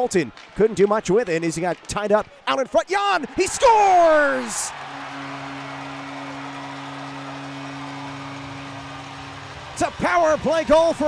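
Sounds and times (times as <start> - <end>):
crowd noise: 4.3 - 11.0
arena goal horn low chord: 4.6 - 10.5.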